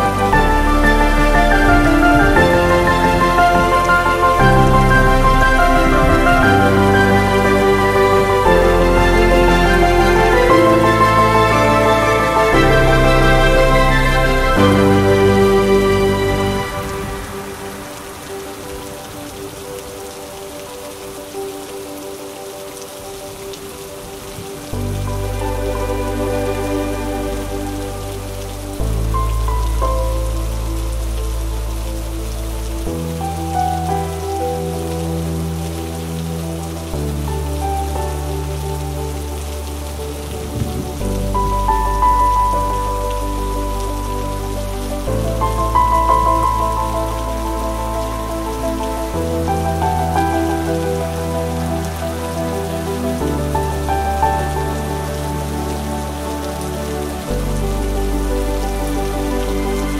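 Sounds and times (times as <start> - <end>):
rain on paving stones: 0.0 - 59.9
soft instrumental music: 0.0 - 59.9.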